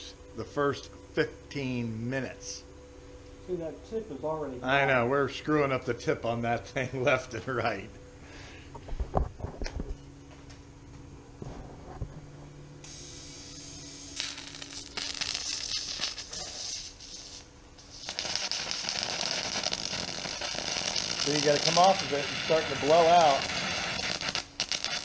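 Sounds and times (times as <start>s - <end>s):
welding arc crackling hiss: 0.0s - 2.6s, 11.4s - 25.0s
steady low hum: 0.0s - 25.0s.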